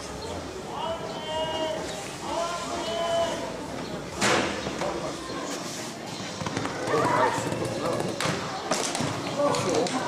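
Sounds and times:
horse cantering in sand: 6.1s - 8.2s.

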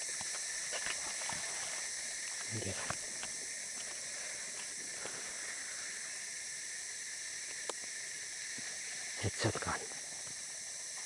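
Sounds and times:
shrill insect chorus: 0.0s - 11.0s.

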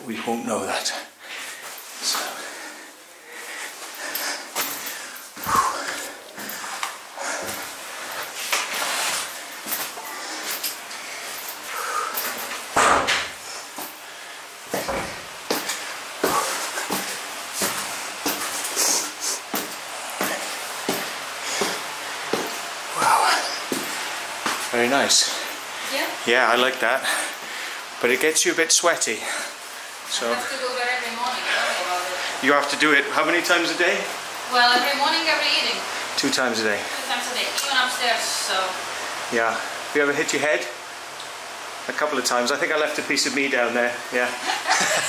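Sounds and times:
person breathing: 1.0s - 8.5s, 9.4s - 12.6s, 13.4s - 17.3s, 18.6s - 24.2s, 27.0s - 27.9s
footsteps climbing indoor stairs: 3.5s - 14.0s, 14.6s - 26.2s.

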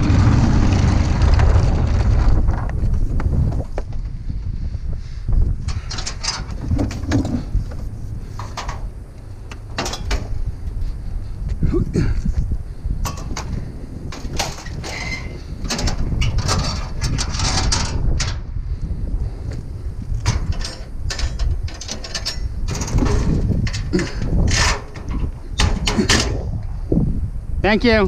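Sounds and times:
steady low rumble: 0.0s - 28.0s
metal clanks and rattles: 5.6s - 10.4s, 13.0s - 18.4s, 20.2s - 26.6s.

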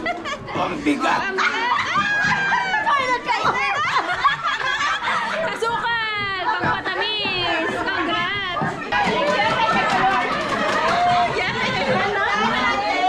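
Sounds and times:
chatter of many people: 0.0s - 13.0s.

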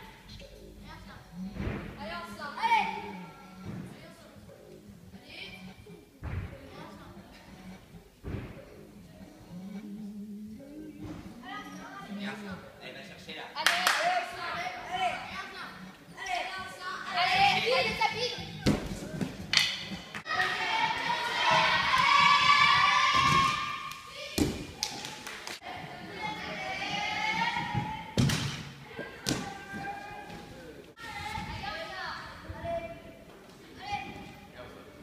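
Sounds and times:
indistinct voices in echoing hall: 0.0s - 35.0s.

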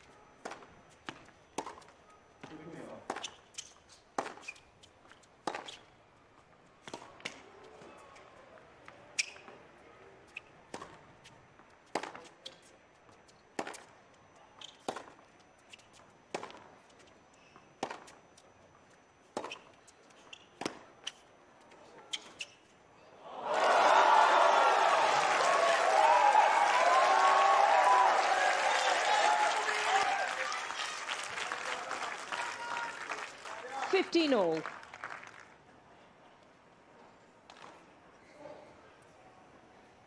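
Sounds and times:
tennis ball bouncing: 0.4s - 5.8s, 6.8s - 7.4s, 10.3s - 11.1s, 11.8s - 13.9s, 14.6s - 17.1s, 17.8s - 18.2s, 19.3s - 21.2s
tennis ball hit by racket: 4.2s - 4.5s, 5.4s - 5.8s, 6.8s - 7.4s, 17.8s - 18.1s, 20.6s - 20.8s
crowd cheering and applauding: 23.3s - 35.5s.

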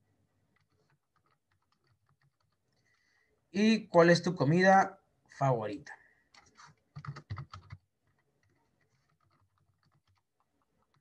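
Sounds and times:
faint keyboard typing: 0.3s - 3.4s, 6.2s - 11.0s.

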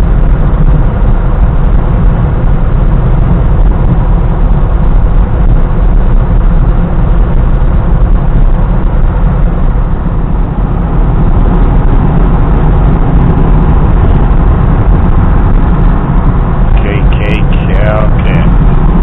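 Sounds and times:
car road and wind noise: 0.0s - 19.0s
faint voice: 16.7s - 18.5s.

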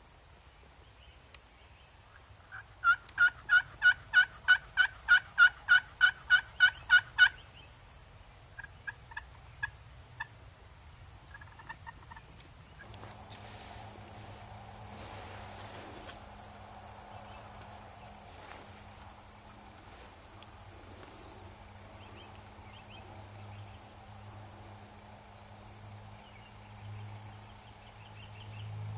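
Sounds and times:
turkey clucks: 2.1s - 7.4s, 8.6s - 10.3s, 11.3s - 13.1s
loud turkey yelps: 2.5s - 7.4s
rustling: 11.4s - 22.5s.

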